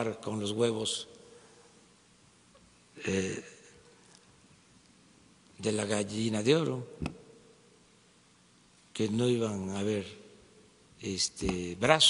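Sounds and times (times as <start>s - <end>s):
man speaking: 0.0s - 1.1s, 3.0s - 3.8s, 5.6s - 7.1s, 9.0s - 10.3s, 11.0s - 12.0s
faint steady hum: 0.0s - 12.0s.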